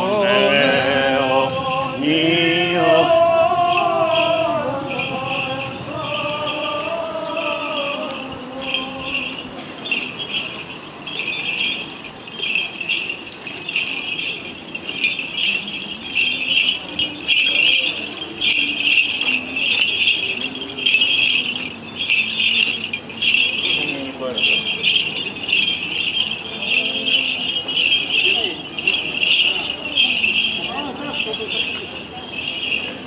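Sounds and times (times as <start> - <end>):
faint voices: 0.0 - 33.0
small metal bells jingling: 0.0 - 33.0.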